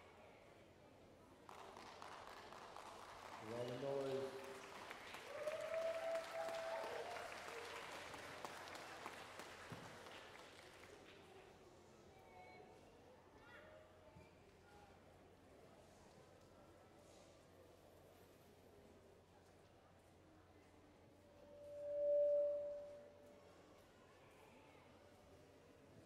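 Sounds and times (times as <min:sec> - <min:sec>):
audience applauding: 0:01.5 - 0:11.0.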